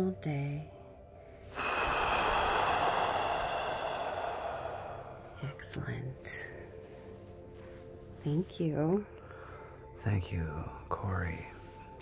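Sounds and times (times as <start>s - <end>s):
deep breath through the mouth: 1.5s - 5.6s.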